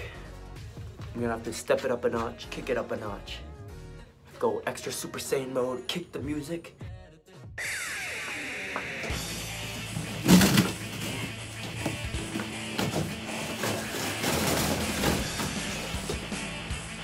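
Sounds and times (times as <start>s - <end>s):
cardboard being ripped: 10.0s - 16.2s.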